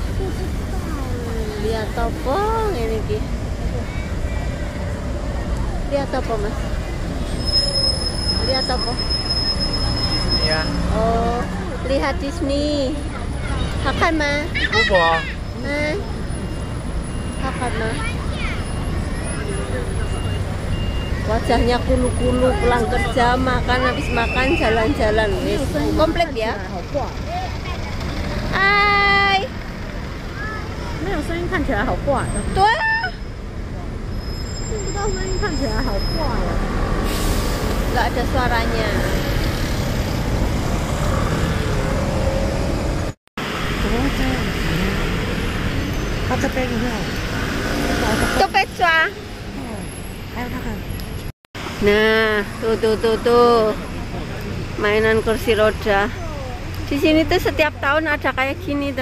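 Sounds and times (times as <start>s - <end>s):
low traffic rumble: 0.0s - 59.0s.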